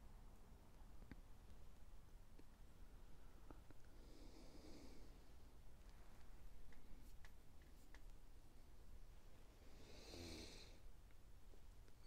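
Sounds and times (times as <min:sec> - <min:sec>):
faint clicks: 0:05.8 - 0:08.2.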